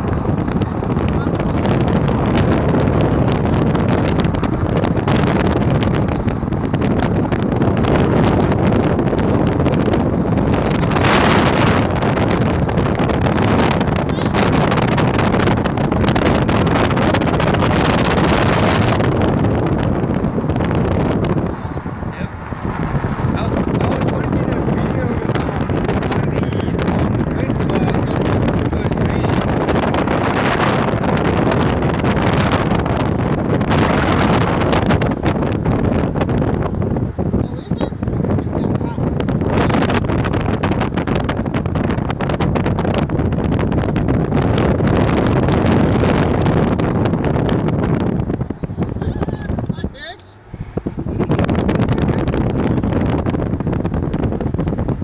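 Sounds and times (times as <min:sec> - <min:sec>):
road rumble: 0:00.0 - 0:55.0
wind rushing over microphone: 0:00.0 - 0:55.0.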